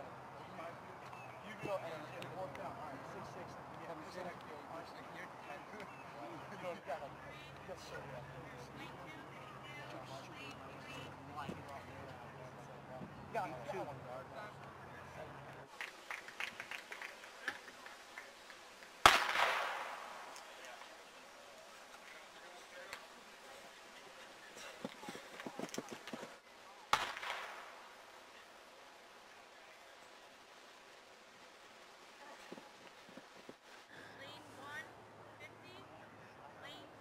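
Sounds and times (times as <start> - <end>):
starter's pistol crack: 19.0 - 20.0, 26.9 - 27.6.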